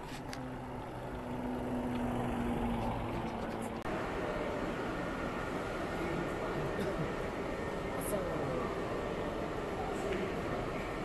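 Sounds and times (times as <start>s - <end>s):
engine drone: 0.0s - 11.0s
outdoor noise: 0.0s - 11.0s
large indoor hall noise: 3.8s - 11.0s.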